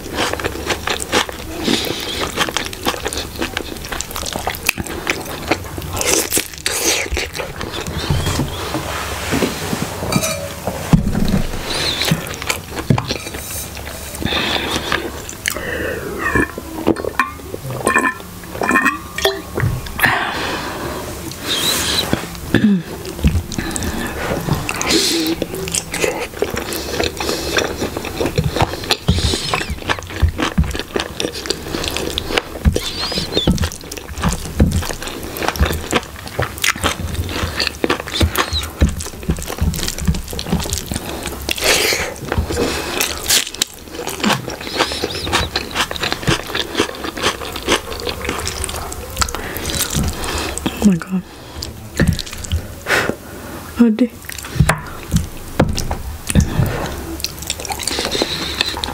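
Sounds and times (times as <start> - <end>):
wet chewing and lip smacks: 0.0 - 8.6, 11.6 - 15.6, 23.0 - 53.2, 54.2 - 58.9
fingers squishing food: 0.0 - 8.8, 11.2 - 20.1, 21.2 - 53.2, 54.2 - 58.9.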